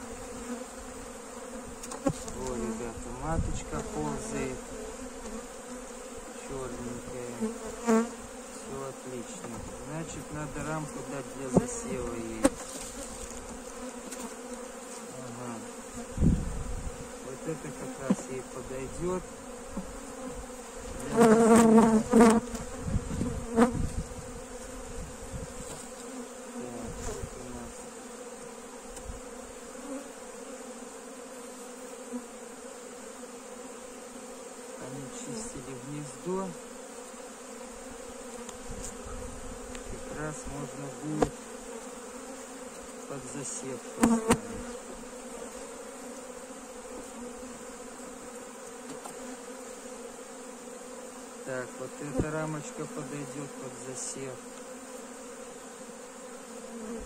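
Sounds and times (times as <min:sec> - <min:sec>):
honeybees buzzing: 0:00.0 - 0:57.0.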